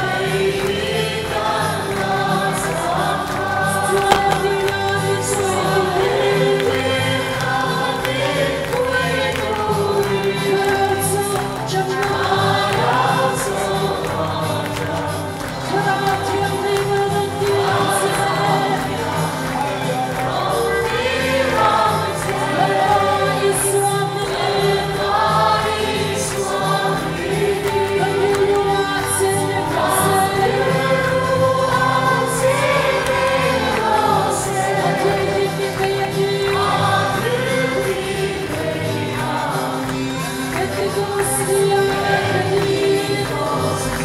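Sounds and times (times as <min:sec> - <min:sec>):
congregation singing a gospel song: 0:00.0 - 0:44.0
instrumental accompaniment: 0:00.0 - 0:44.0.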